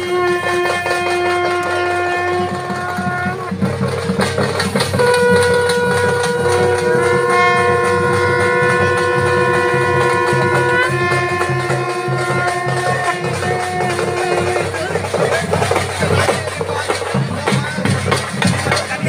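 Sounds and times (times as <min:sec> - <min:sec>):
wind instruments holding long notes: 0:00.0 - 0:19.0.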